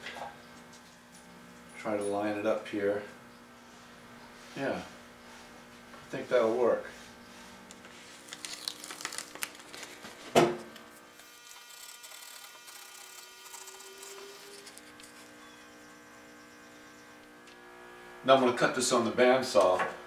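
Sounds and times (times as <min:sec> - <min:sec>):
faint hum: 0:00.0 - 0:20.0
masking tape crinkling: 0:07.7 - 0:10.2, 0:11.2 - 0:15.4.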